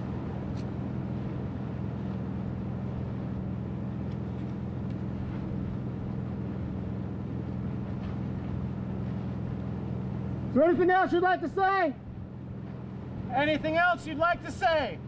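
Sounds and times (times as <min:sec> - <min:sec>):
steady low machinery hum: 0:00.0 - 0:15.0.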